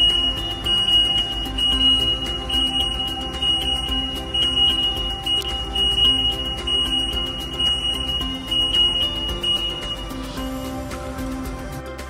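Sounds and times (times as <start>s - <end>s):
high-pitched warning tone: 0.0s - 10.5s
background music: 0.0s - 12.0s.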